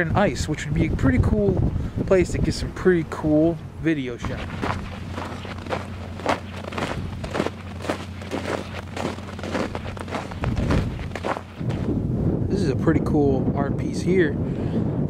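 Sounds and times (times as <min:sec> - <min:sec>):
wind buffeting microphone: 0:00.0 - 0:15.0
boots walking on snow and ice: 0:04.2 - 0:11.9.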